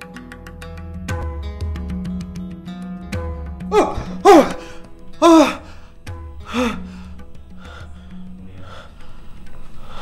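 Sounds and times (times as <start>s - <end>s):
background music: 0.0s - 10.0s
person gasping in fright: 3.7s - 7.1s.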